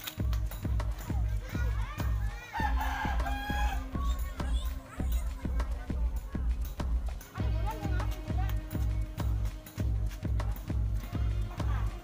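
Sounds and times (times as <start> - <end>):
background music with steady beat: 0.0 - 12.0
rooster crowing: 2.6 - 3.9.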